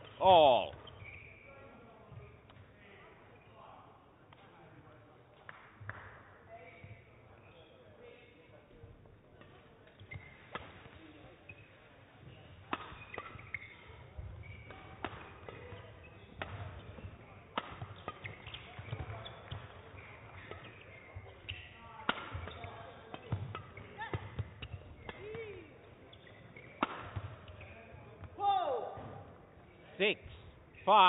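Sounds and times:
shoes squeaking on court floor: 0:00.0 - 0:03.8, 0:06.5 - 0:08.8, 0:09.4 - 0:28.4
rackets striking shuttlecock: 0:12.6 - 0:28.4.

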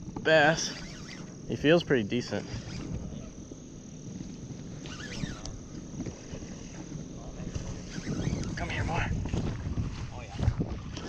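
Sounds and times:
faint high-pitched whine: 0:00.0 - 0:11.0
wind rumbling on microphone: 0:02.4 - 0:11.0.

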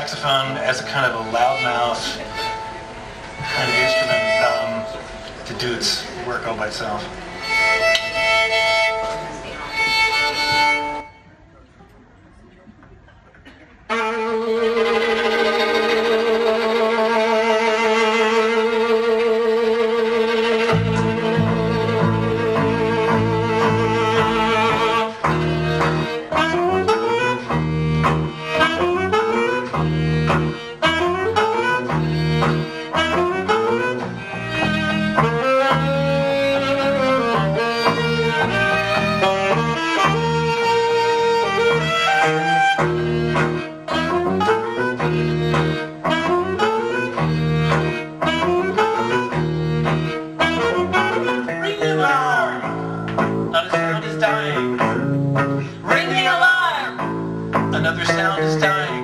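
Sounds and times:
saxophone: 0:00.0 - 0:06.1, 0:06.9 - 0:11.4, 0:13.8 - 0:56.0
bowed violin: 0:00.0 - 0:11.4, 0:13.9 - 0:59.0
acoustic guitar low notes: 0:20.6 - 0:59.0.

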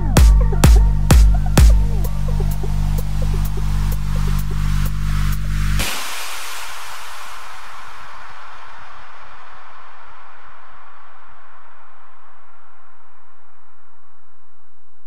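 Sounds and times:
hiss of noise: 0:02.6 - 0:12.2.

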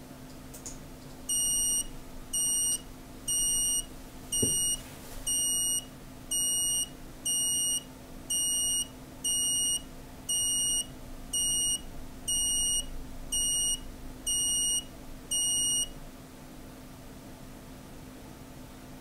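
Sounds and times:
short high-pitched beeps: 0:01.3 - 0:15.9.

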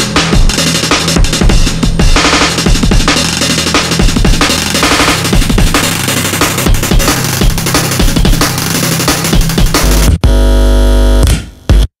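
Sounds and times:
electronic bass music: 0:00.0 - 0:11.9.

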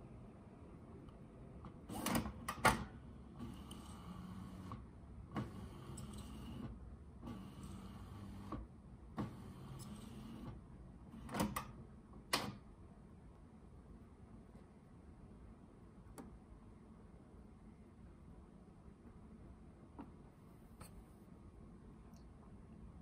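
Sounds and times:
printer clicks and clunks: 0:01.6 - 0:12.6
printer motor running: 0:03.3 - 0:10.6.

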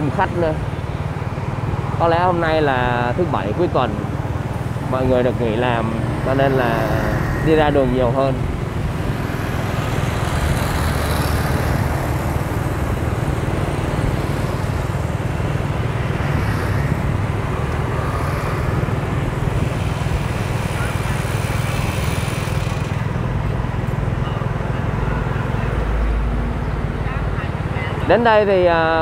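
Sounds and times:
scooter engines: 0:00.0 - 0:29.0.

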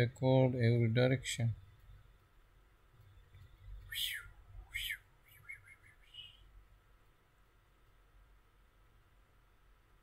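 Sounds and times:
bird chirping faintly: 0:03.0 - 0:06.7.

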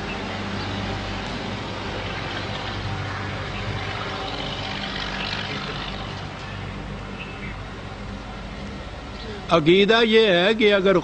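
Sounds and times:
low constant hum: 0:00.0 - 0:11.0.

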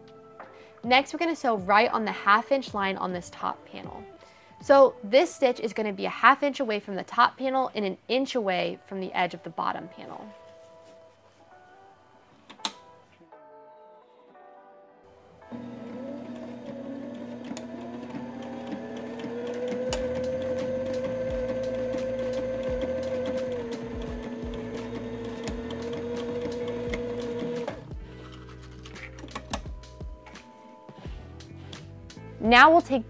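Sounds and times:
background music: 0:00.0 - 0:33.0
sewing machine stitching: 0:15.5 - 0:27.9.

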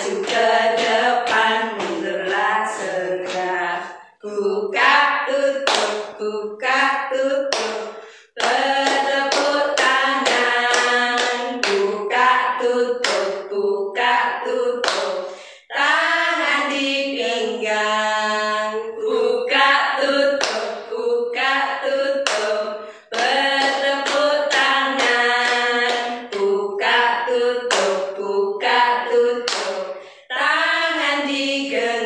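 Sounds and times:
hand claps: 0:00.0 - 0:03.6, 0:05.6 - 0:06.2, 0:07.5 - 0:11.9, 0:13.0 - 0:13.4, 0:14.8 - 0:15.3, 0:20.4 - 0:20.8, 0:22.2 - 0:26.5, 0:27.7 - 0:28.1, 0:29.4 - 0:30.0
women singing together: 0:00.0 - 0:32.0.

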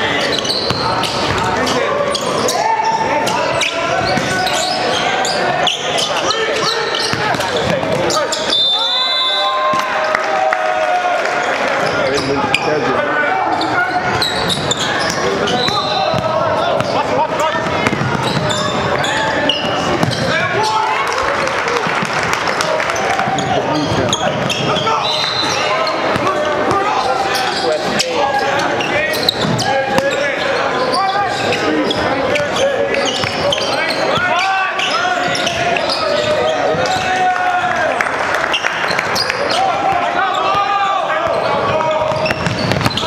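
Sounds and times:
basketball bouncing on wooden court: 0:00.4 - 0:01.5, 0:14.4 - 0:17.0, 0:17.6 - 0:20.4, 0:22.5 - 0:24.8, 0:41.2 - 0:43.0.

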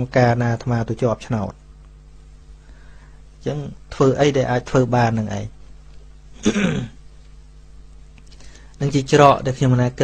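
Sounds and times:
faint steady hum: 0:00.0 - 0:10.0
man clearing his throat: 0:06.4 - 0:07.0.

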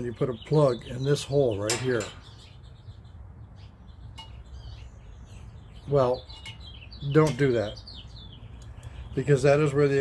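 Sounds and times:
faint bird chirps: 0:00.0 - 0:09.6.

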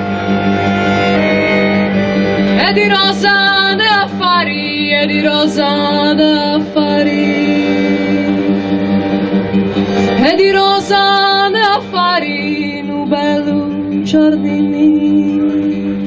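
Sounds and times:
acoustic guitar: 0:00.0 - 0:16.0
button accordion sustained notes: 0:00.0 - 0:16.0
woman singing: 0:02.5 - 0:08.8, 0:10.1 - 0:16.0.

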